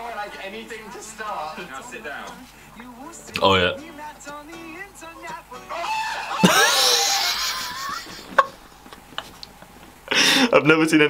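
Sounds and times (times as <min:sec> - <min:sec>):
rubber chicken squawk: 0:05.7 - 0:07.4
people laughing: 0:05.7 - 0:08.6.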